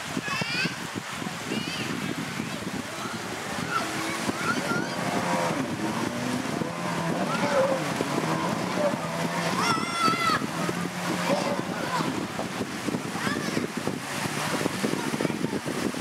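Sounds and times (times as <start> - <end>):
water splashing against hull: 0.0 - 16.0
jet ski engine running: 0.8 - 16.0.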